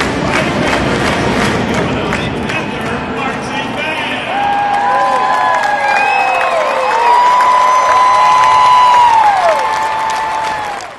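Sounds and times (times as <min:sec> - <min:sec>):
crowd applauding and cheering: 0:00.0 - 0:10.9
long whoops: 0:04.3 - 0:10.9.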